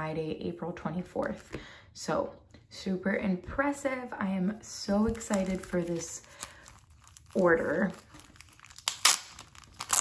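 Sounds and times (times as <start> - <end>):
plastic sleeve crinkling: 4.9 - 10.0.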